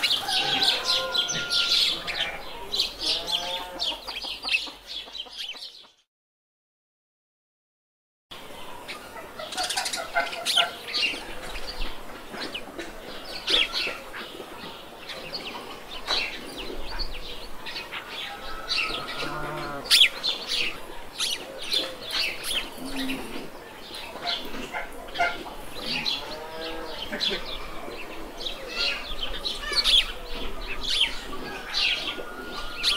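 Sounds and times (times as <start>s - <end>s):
chickens chirping: 0.0s - 6.0s, 8.5s - 32.9s
chickens clucking: 0.0s - 6.0s, 8.7s - 32.9s.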